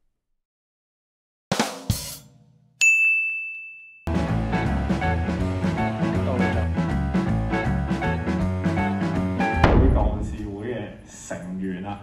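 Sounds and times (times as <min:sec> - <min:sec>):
bright ding chime: 0:02.8 - 0:04.1.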